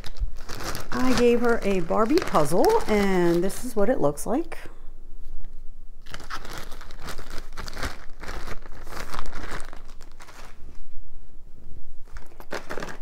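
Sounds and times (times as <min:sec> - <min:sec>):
packaging crinkling: 0:00.0 - 0:03.8, 0:06.0 - 0:10.8, 0:12.0 - 0:13.0.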